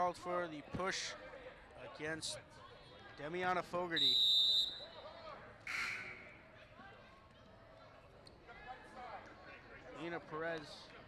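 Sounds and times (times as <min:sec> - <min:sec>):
referee's whistle: 0:03.9 - 0:05.0, 0:05.7 - 0:06.4.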